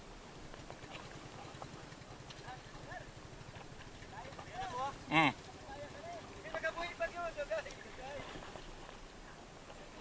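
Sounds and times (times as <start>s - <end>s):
faint voices calling out: 4.3s - 6.4s.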